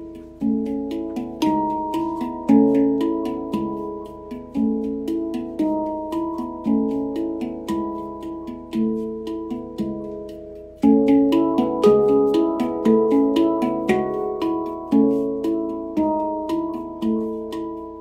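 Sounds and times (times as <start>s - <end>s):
handpan melody: 0.0s - 18.0s.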